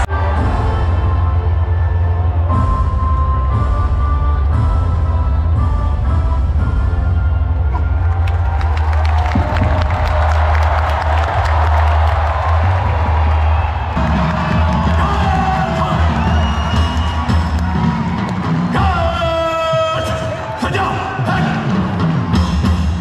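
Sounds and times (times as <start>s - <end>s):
large crowd cheering: 0.0s - 4.6s, 7.2s - 23.0s
bass-heavy music over loudspeakers: 0.0s - 23.0s.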